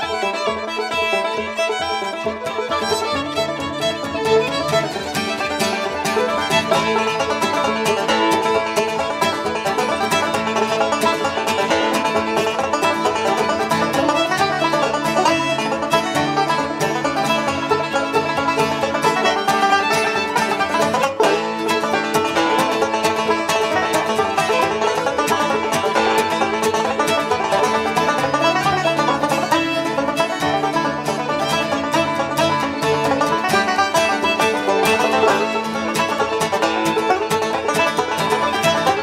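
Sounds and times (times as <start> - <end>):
acoustic guitar: 0.0 - 39.0
banjos: 0.0 - 39.0
fiddle: 0.0 - 39.0.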